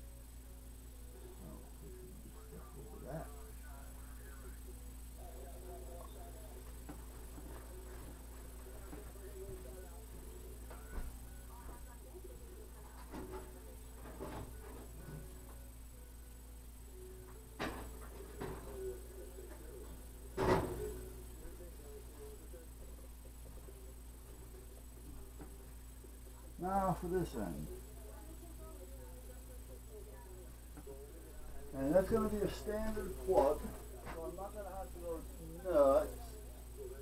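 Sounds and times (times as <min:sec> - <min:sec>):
low electrical hum: 0:00.0 - 0:37.0.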